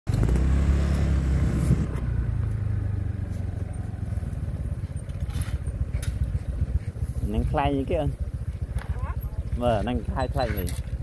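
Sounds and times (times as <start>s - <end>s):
small engine running: 0.1s - 11.0s.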